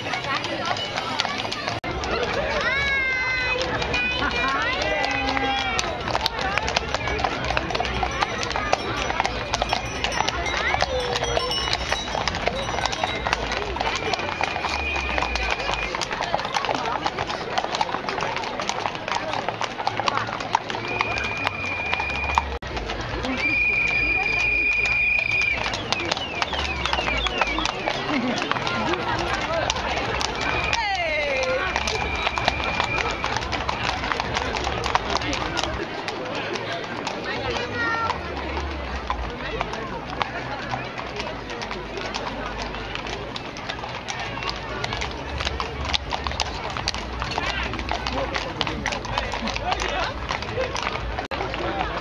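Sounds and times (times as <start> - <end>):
horse hooves on pavement: 0.0 - 52.0.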